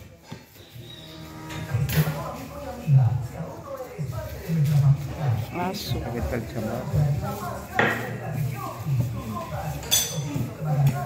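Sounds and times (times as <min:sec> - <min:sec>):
voices talking: 0:00.5 - 0:11.0.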